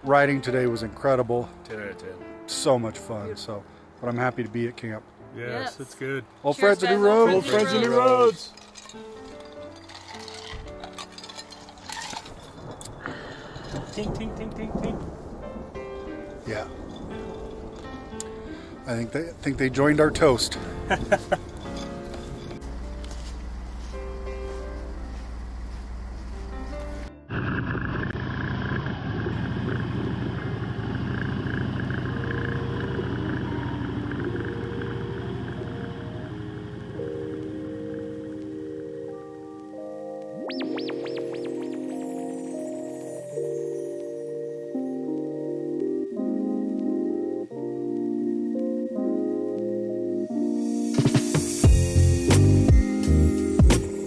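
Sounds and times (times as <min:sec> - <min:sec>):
background music with held notes: 0:00.0 - 0:27.2, 0:32.4 - 0:54.0
motorcycle engine running: 0:27.3 - 0:37.2
soft sustained chords: 0:29.9 - 0:50.9.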